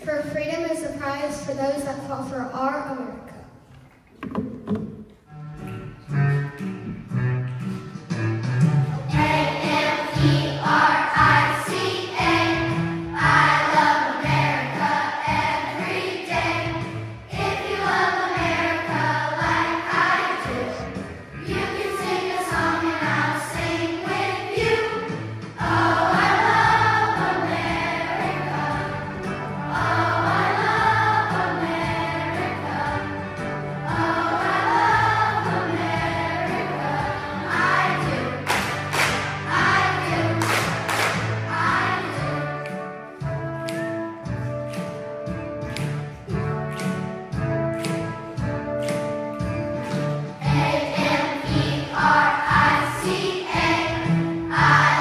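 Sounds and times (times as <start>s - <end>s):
instrumental accompaniment music: 3.7s - 55.0s
children's choir singing: 9.0s - 43.4s, 50.2s - 55.0s.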